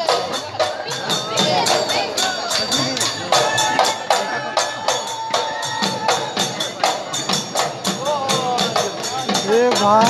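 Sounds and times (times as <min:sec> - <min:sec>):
dhol drums: 0:00.0 - 0:10.0
small hand cymbals: 0:00.0 - 0:10.0.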